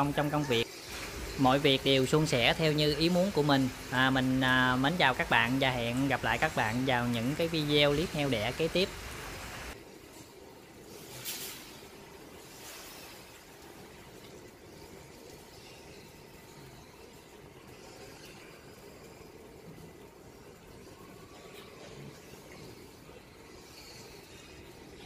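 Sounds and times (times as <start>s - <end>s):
low even hiss: 0.0s - 25.0s.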